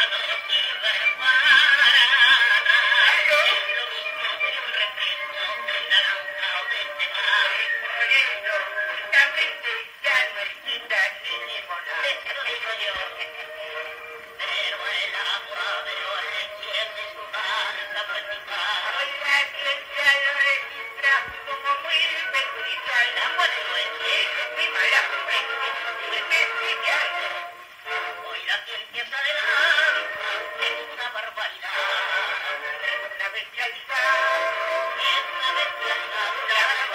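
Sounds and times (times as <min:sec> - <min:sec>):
record surface crackle: 0:00.0 - 0:36.9
two men singing with orchestra: 0:00.0 - 0:36.9.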